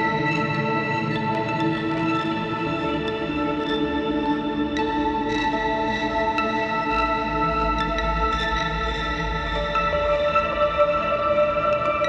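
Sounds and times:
ambient guitar music with reverb: 0.0s - 12.0s.

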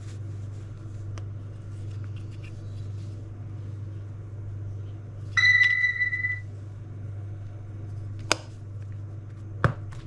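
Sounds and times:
earbuds electronic beep: 5.4s - 6.4s.

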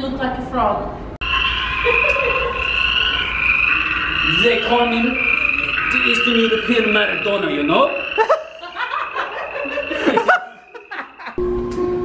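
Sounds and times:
frog chorus trilling: 1.2s - 11.4s.

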